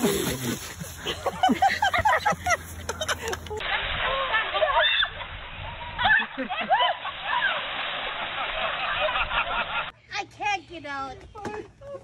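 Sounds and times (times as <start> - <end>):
people talking and laughing: 0.0 - 7.5
women shrieking and laughing: 0.9 - 9.9.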